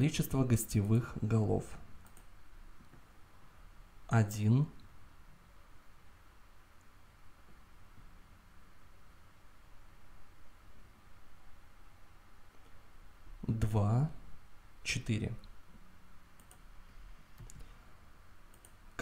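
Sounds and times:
low hum and hiss: 0.0s - 19.0s
mouse and keyboard clicks: 17.4s - 17.7s.

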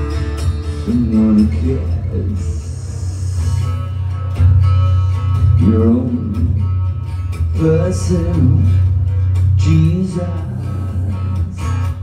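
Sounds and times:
amplified acoustic guitar riff: 0.0s - 12.0s.

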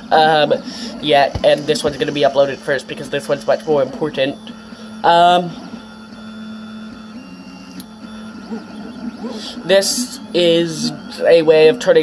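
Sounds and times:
stepper motor tones: 0.0s - 12.0s.

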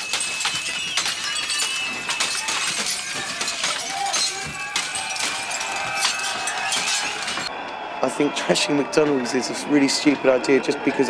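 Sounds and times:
glass breaking: 0.0s - 7.5s
glass shards tinkling: 0.0s - 7.5s.

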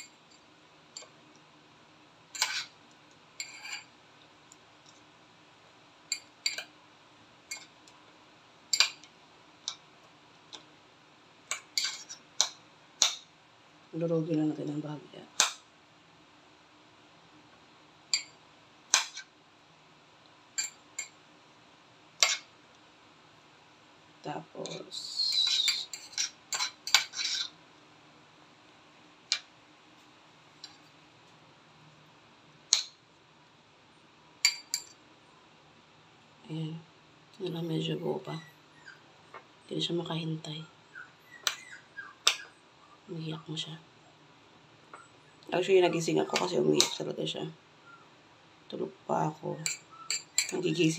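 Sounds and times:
metal spoon clinking ceramic bowl: 8.7s - 9.0s, 20.6s - 21.1s, 34.4s - 35.0s, 49.6s - 50.6s
metal spoon clicking against bowl: 49.6s - 50.6s.

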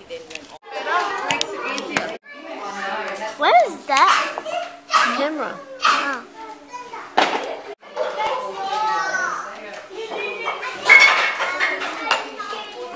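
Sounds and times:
young children chattering: 0.0s - 12.9s.

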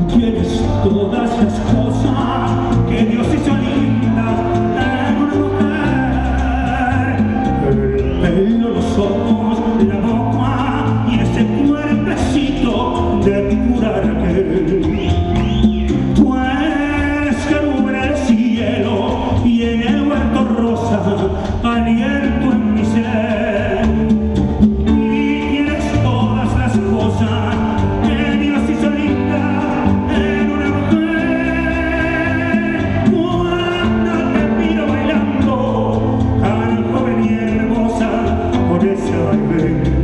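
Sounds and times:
latin band playing: 0.0s - 40.0s
man singing: 0.0s - 40.0s.

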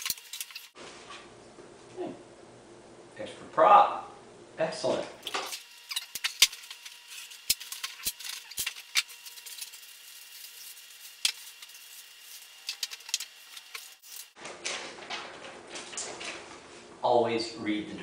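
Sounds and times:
room sound: 0.0s - 18.0s
plastic wrapping crinkling: 5.2s - 16.4s.

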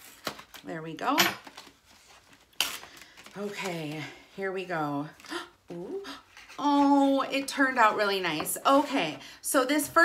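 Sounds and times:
faint paper crinkling: 1.5s - 4.4s.

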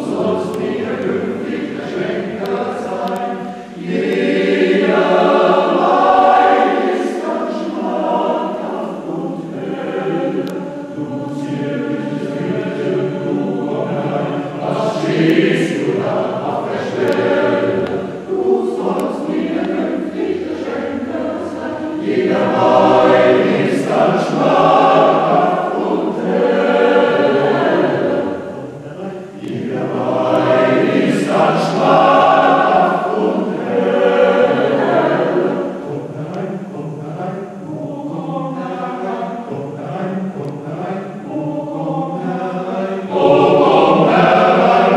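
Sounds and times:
men's choir singing: 0.0s - 44.9s.

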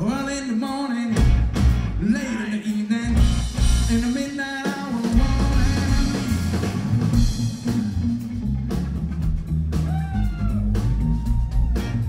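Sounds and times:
drum kit: 0.0s - 12.0s
electric guitar: 0.0s - 12.0s
electric bass: 1.1s - 2.4s, 3.0s - 4.4s, 5.0s - 12.0s.

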